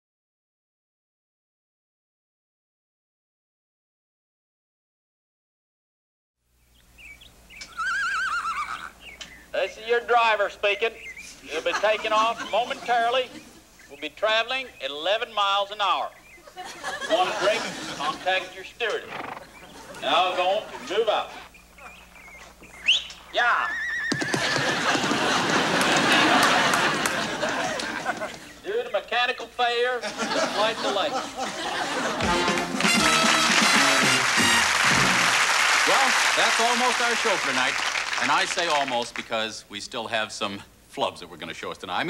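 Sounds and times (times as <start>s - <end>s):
horse whinnying: 7.6s - 9.0s, 19.0s - 19.7s, 22.9s - 24.8s
man speaking: 9.5s - 16.2s, 17.0s - 19.1s, 20.0s - 21.5s, 35.8s - 42.0s
hoof clops: 23.9s - 25.1s
audience crowd noise: 24.4s - 28.5s, 30.2s - 39.2s.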